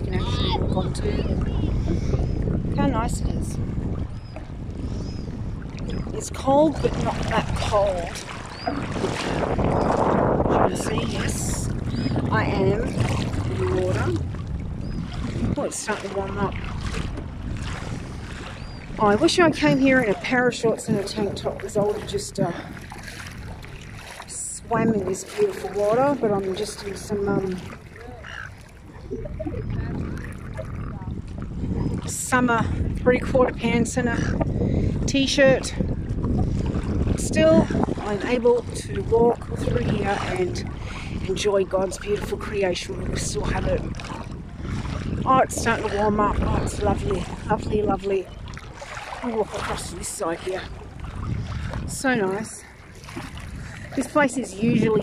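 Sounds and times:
wind on microphone: 0:00.0 - 0:55.0
seawater splashing around legs: 0:05.6 - 0:32.3, 0:36.1 - 0:55.0.

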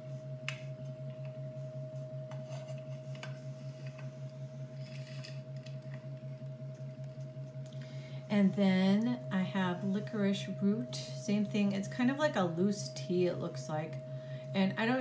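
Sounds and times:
electrical hum: 0:00.0 - 0:15.0.

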